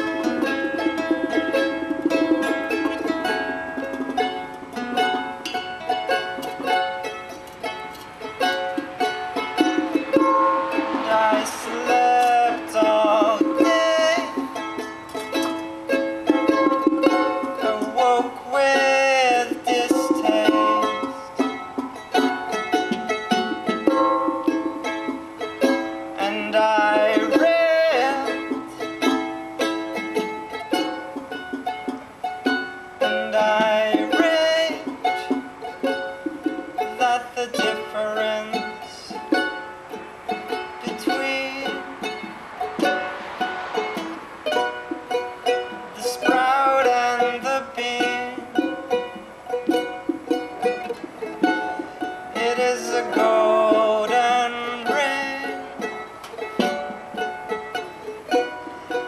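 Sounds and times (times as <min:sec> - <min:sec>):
charango playing: 0:00.0 - 0:59.0.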